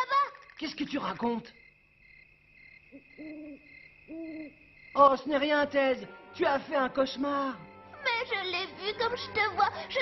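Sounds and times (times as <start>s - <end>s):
high whine of night ambience: 0.0s - 6.4s
cartoon owl hoots: 2.9s - 4.6s.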